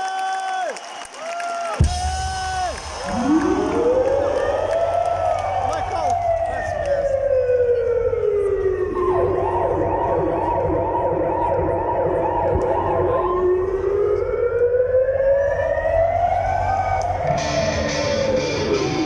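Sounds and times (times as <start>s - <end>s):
siren-like wail over loudspeakers: 2.8s - 19.0s.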